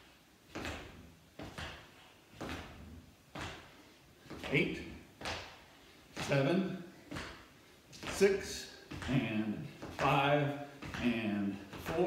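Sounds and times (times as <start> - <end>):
feet thudding on hard floor: 0.5 - 12.0.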